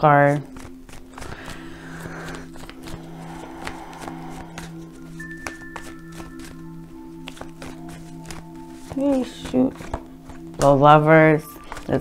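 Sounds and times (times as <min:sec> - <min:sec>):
soft background music: 0:00.0 - 0:12.0
cards clicking on a table: 0:00.3 - 0:01.6, 0:07.2 - 0:10.7, 0:11.6 - 0:12.0.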